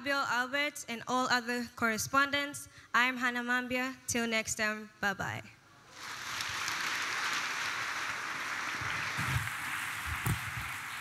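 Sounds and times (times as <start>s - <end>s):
congregation applauding: 5.9s - 11.0s.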